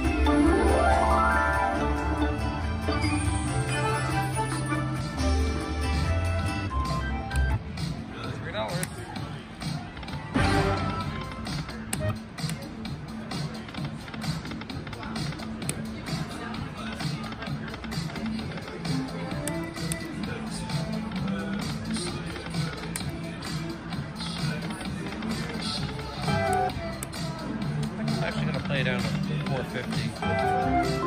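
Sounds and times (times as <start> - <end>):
slot machine game music: 0.0 - 7.6, 10.3 - 11.4, 30.2 - 31.0.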